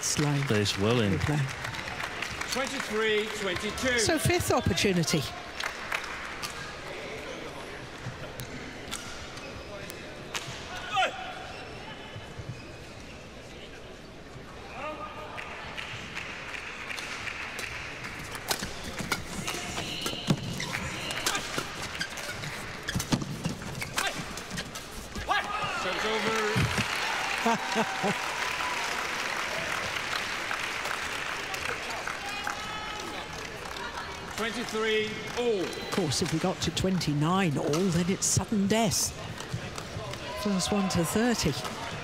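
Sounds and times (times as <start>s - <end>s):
crowd murmur and voices: 3.6s - 42.0s.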